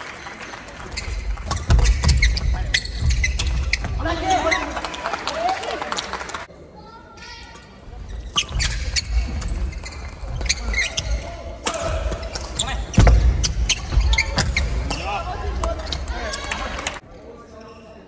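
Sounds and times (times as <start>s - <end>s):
shoes squeaking on court: 0.8s - 4.8s, 7.9s - 11.4s, 12.1s - 16.8s.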